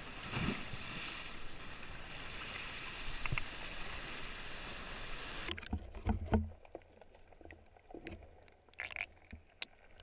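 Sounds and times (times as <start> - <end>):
bubbling clicks of water: 5.5 - 10.0.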